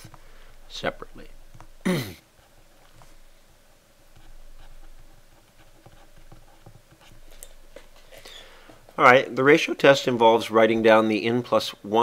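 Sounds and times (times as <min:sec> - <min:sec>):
stylus scratching on tablet: 0:02.4 - 0:07.8.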